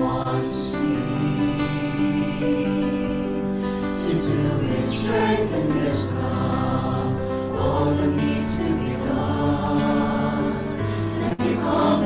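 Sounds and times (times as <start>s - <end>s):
choir singing slowly: 0.0s - 12.0s.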